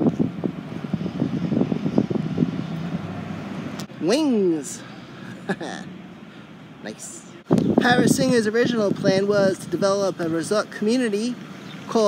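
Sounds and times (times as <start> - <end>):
wind gusting on microphone: 0.0 - 10.7
pickup truck driving past: 0.2 - 7.9.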